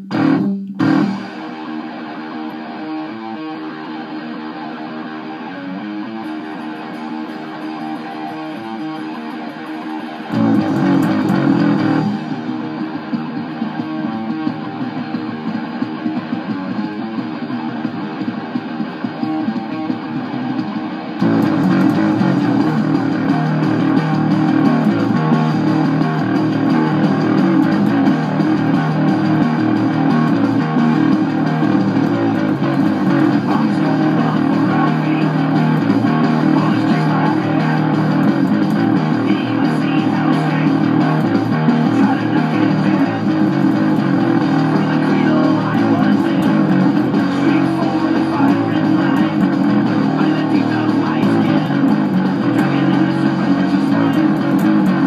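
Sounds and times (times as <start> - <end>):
electric bass: 0.0 - 55.0
hard rock electric guitar: 0.0 - 55.0.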